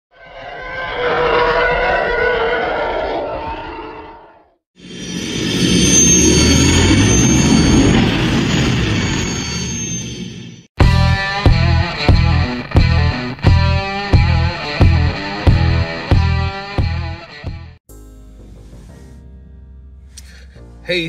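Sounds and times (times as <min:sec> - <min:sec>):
spaceship passing: 0:00.1 - 0:09.7.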